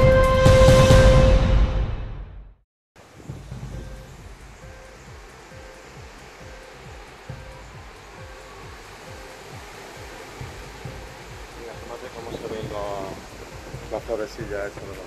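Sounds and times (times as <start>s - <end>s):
strong wind gusting: 3.0s - 15.0s
wind buffeting microphone: 3.0s - 15.0s.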